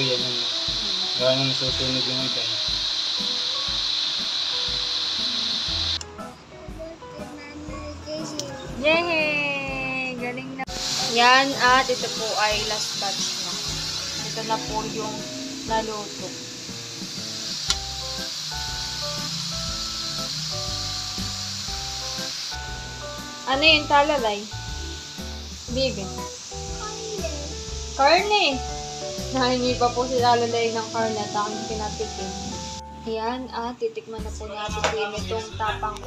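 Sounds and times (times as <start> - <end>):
food sizzling in hot oil: 0.0 - 6.0, 10.7 - 33.6
background music with low beat: 0.0 - 33.3, 34.3 - 36.0.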